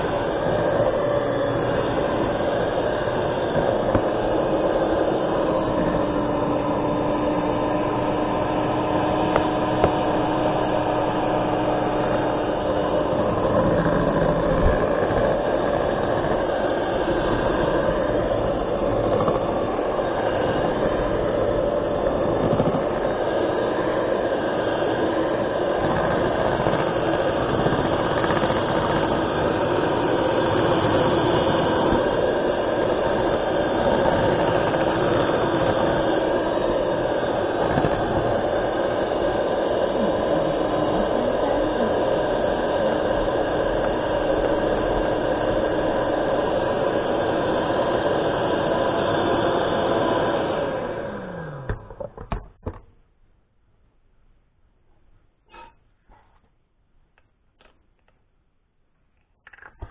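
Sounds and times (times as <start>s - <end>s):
electric hand mixer whining: 0.0s - 52.8s.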